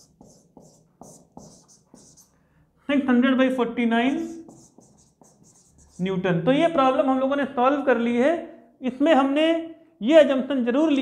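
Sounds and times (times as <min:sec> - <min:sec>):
marker writing on whiteboard: 0:00.0 - 0:02.4, 0:04.0 - 0:06.3.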